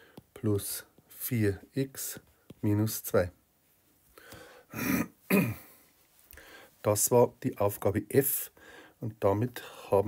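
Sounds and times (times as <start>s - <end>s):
person clearing throat: 4.7s - 5.8s.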